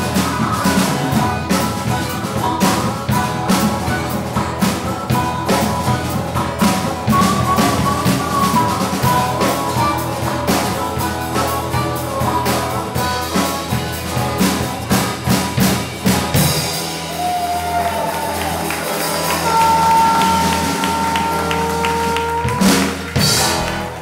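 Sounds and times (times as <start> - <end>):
acoustic guitar: 0.0 - 24.0
drum kit beat: 0.0 - 24.0
harmonica: 0.0 - 24.0
live band playing: 0.0 - 24.0.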